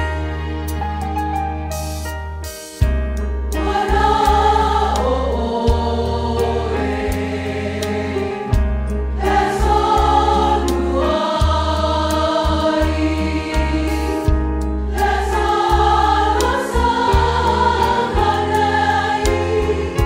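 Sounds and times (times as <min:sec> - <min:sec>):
held bass notes: 0:00.0 - 0:20.0
choir singing gospel: 0:03.5 - 0:20.0.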